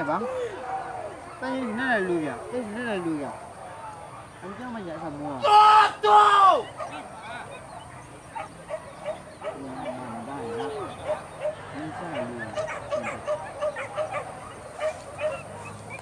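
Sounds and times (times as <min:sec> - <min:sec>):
dogs yipping: 0:06.5 - 0:16.0.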